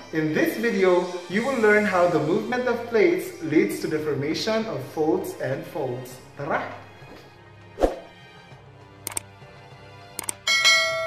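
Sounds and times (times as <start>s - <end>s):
quick clicks: 9.1s - 9.3s, 10.2s - 10.4s.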